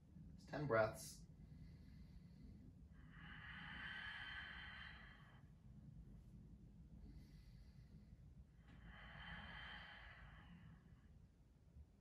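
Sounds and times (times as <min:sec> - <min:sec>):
person breathing: 0:01.4 - 0:05.8, 0:06.9 - 0:11.2.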